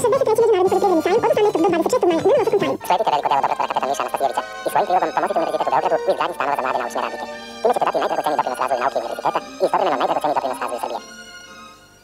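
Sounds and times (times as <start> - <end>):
sped-up garbled voices and music: 0.0 - 11.3.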